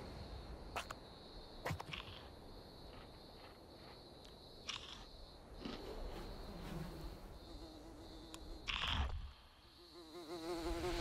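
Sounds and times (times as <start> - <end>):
high insect drone: 0.0 - 11.0
fly buzzing: 5.6 - 11.0.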